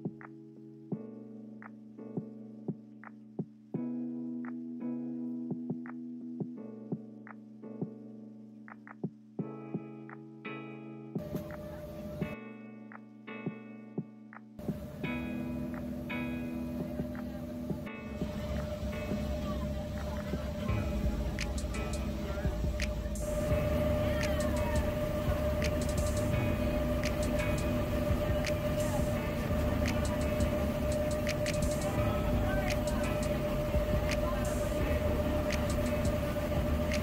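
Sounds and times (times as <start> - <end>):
soft background music: 0.0 - 37.0
boat engine drone: 11.2 - 12.3, 14.6 - 37.0
water noise: 14.6 - 37.0.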